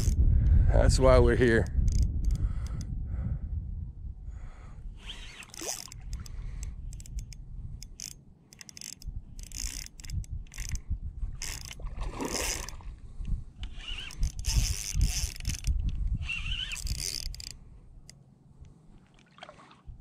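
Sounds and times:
fishing reel gears whirring and clicking: 0.0 - 0.2, 1.6 - 2.9, 5.0 - 12.8, 13.6 - 18.2
wind buffeting microphone: 0.0 - 8.2, 9.0 - 18.9.

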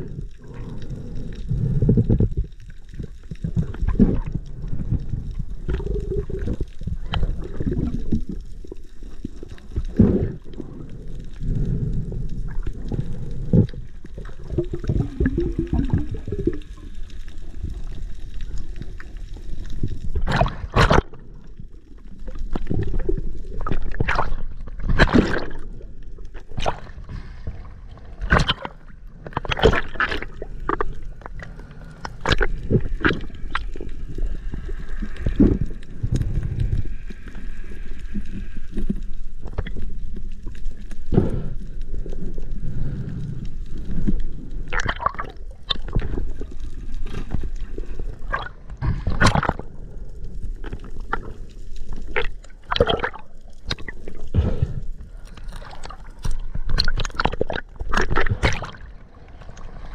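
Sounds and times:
water gurgling and sloshing: 0.0 - 59.9
knocks and splashes: 20.2 - 21.2, 24.0 - 25.6, 56.7 - 58.8.

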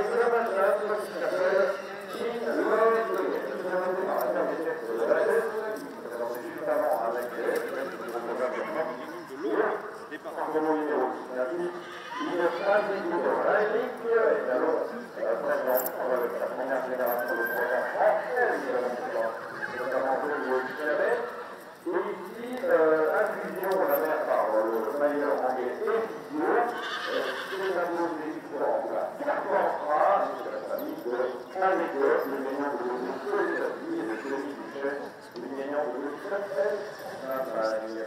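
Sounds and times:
people talking: 0.0 - 21.3, 21.9 - 38.0
horse whinnying: 11.7 - 12.9, 19.3 - 21.6, 26.6 - 27.8.

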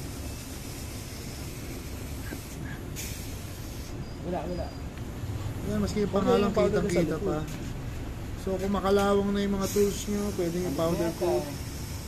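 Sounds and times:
compressed air hissing: 0.0 - 5.7, 7.3 - 12.0.

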